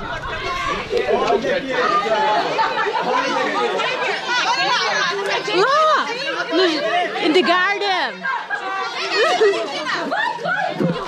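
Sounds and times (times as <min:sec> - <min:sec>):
chatter of many people: 0:00.0 - 0:11.0
children's voices: 0:00.0 - 0:11.0.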